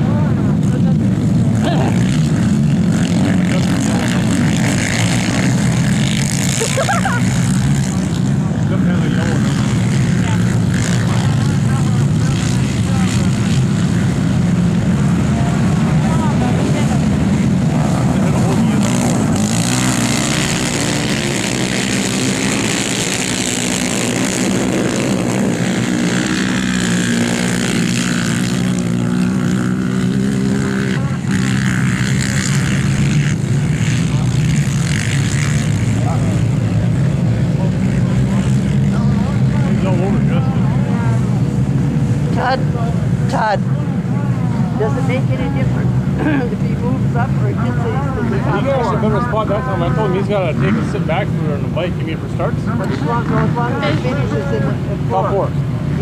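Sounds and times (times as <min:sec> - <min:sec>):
atv engines racing: 0:00.0 - 0:56.0.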